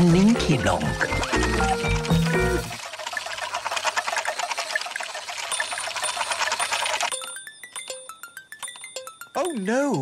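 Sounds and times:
fast ticking rattle: 0.0 - 9.8
thin high tone: 5.4 - 10.0.

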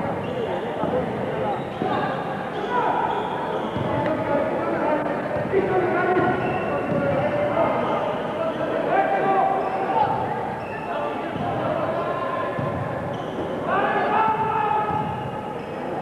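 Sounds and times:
crowd voices in large hall: 0.0 - 16.0
basketball bouncing on court: 6.2 - 7.3, 12.5 - 13.5, 14.4 - 15.3.

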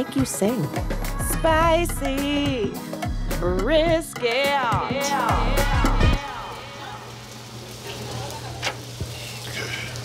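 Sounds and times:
meat sizzling: 0.0 - 10.0.

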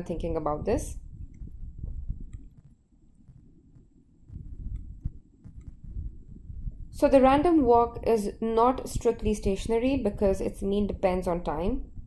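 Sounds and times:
low uneven rumble: 0.0 - 12.0.

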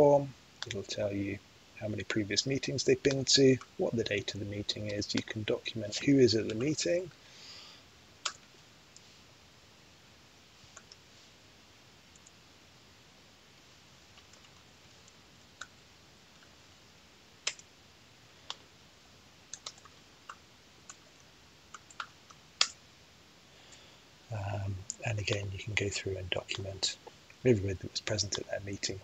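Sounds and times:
room hiss: 0.0 - 29.0
keyboard and mouse clicks: 17.4 - 17.7, 19.5 - 21.0, 21.7 - 22.8.

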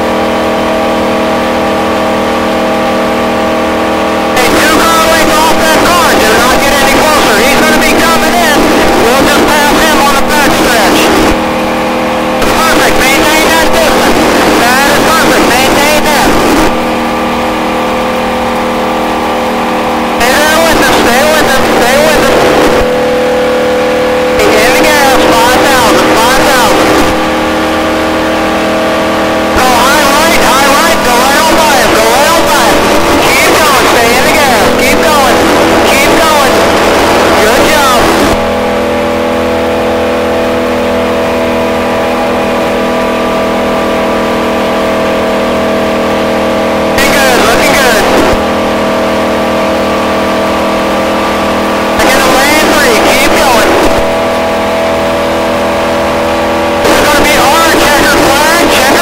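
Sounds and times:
car engine running hard: 0.0 - 59.0.

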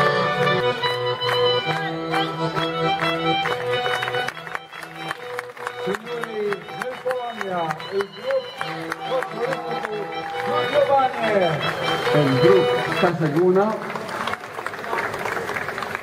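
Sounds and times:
folk band with accordion: 0.0 - 14.4.

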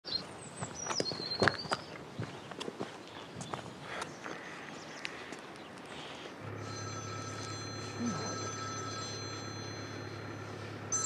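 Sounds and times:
footsteps on gravel: 0.4 - 6.3.

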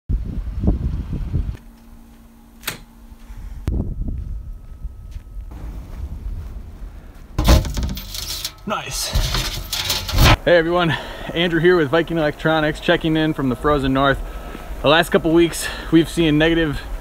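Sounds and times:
wind rumble on microphone: 0.1 - 1.6, 3.3 - 7.4
metal mailbox door clattering: 7.4 - 10.4.

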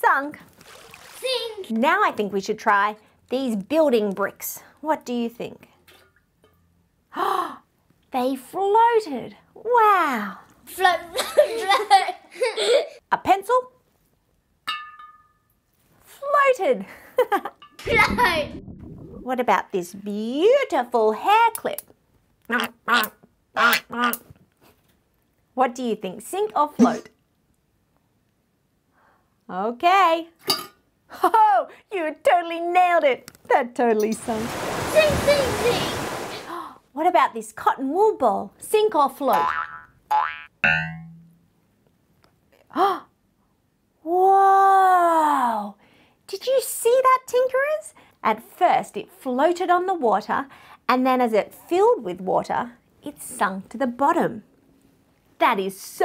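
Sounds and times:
ringing note: 40.6 - 41.4.

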